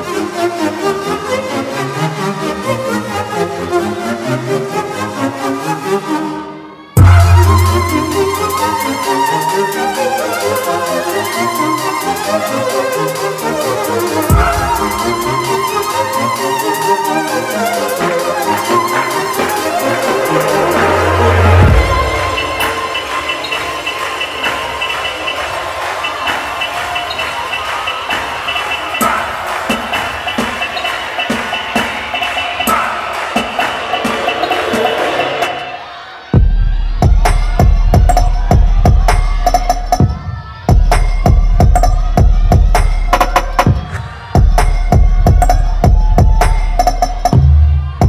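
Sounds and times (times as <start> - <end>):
audience cheering and shouting: 0.7 - 48.0
dance track with heavy bass: 7.0 - 48.0.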